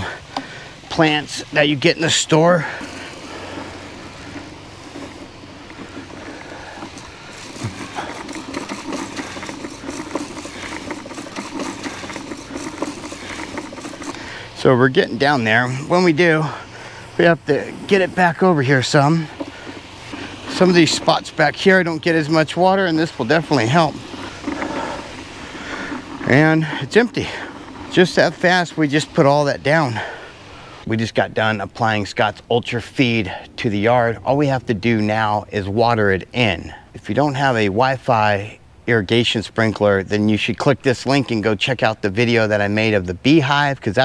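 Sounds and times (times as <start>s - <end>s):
fast ticking: 0.0s - 30.5s
spreader whirring rattle: 0.0s - 30.9s.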